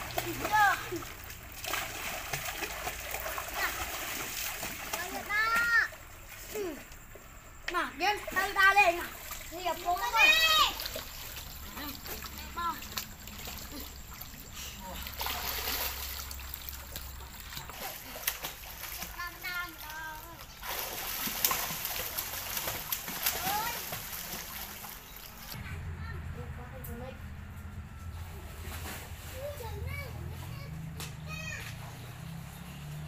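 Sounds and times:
children splashing in water: 0:00.0 - 0:07.4, 0:08.0 - 0:25.6
child's high-pitched call: 0:10.0 - 0:10.8, 0:29.4 - 0:31.8.

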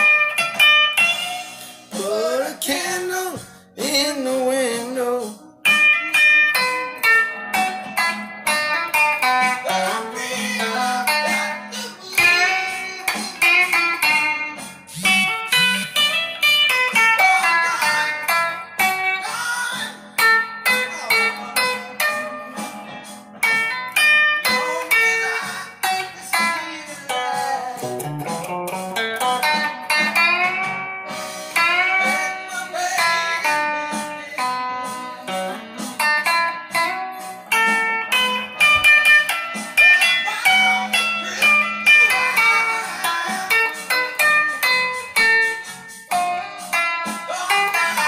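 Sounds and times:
guitar notes plucked: 0:00.0 - 0:48.0.

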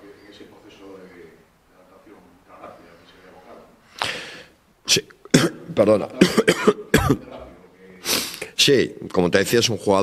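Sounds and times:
man coughing: 0:05.3 - 0:07.4.

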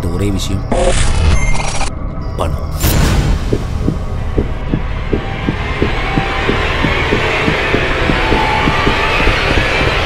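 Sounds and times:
low rumbling drone: 0:01.9 - 0:10.0.

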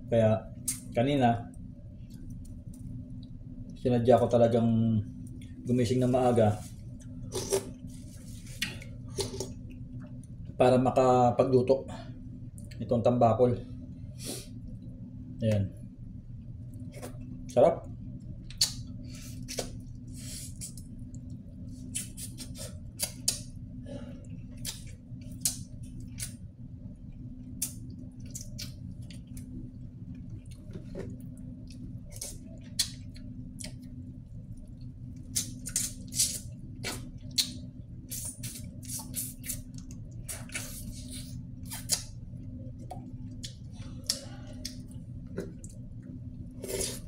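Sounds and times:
steady low hum: 0:00.0 - 0:47.0
chewing: 0:27.5 - 0:47.0.

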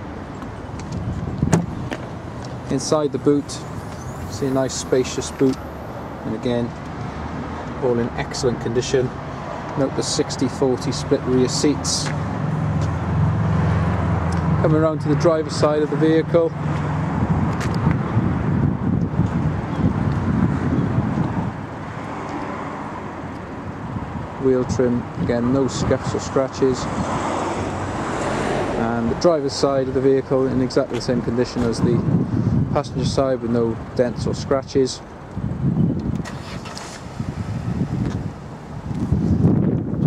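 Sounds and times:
wind buffeting microphone: 0:00.4 - 0:07.8, 0:16.5 - 0:40.0.

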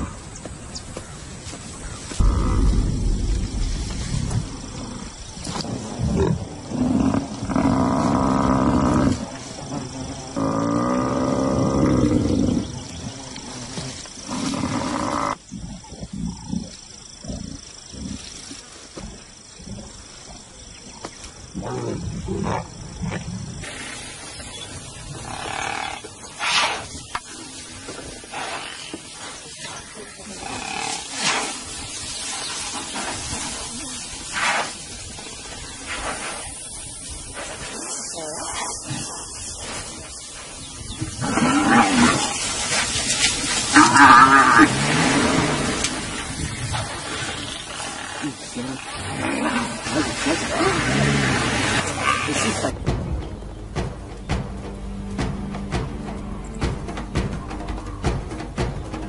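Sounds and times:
lions growling and snarling: 0:02.2 - 0:18.6, 0:21.5 - 0:24.2, 0:40.8 - 0:52.8.

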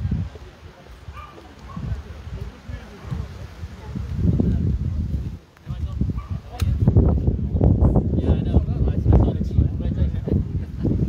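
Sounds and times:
wind buffeting microphone: 0:00.0 - 0:11.0
sharp click: 0:06.5 - 0:06.8.

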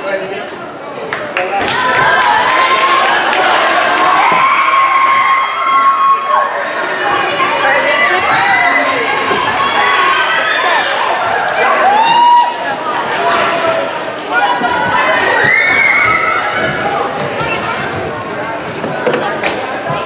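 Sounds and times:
crowd of young voices cheering: 0:01.6 - 0:17.2.

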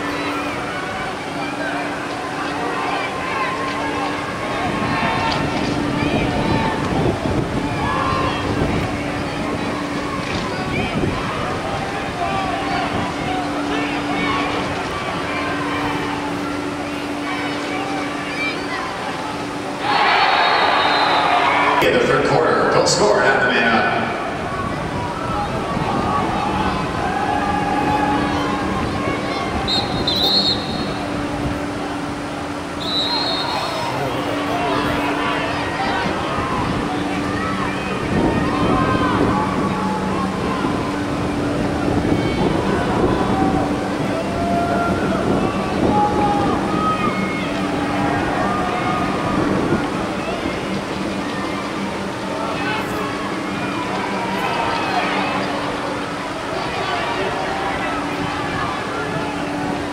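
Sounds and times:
players and onlookers calling out: 0:00.0 - 0:41.1
short high whistle tones: 0:29.7 - 0:31.0, 0:32.8 - 0:34.2.

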